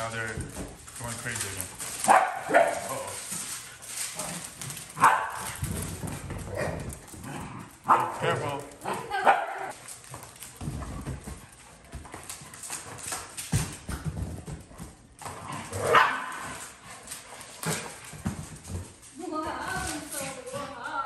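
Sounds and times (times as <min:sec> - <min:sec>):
dog claws clicking on wooden floor: 0:00.0 - 0:21.0.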